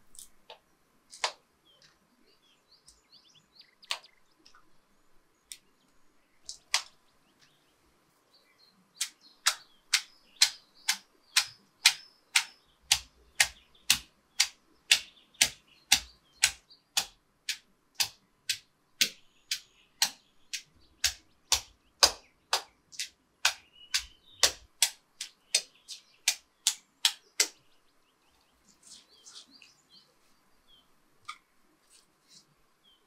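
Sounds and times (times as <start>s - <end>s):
stone pestle pounding in mortar: 9.5s - 22.6s.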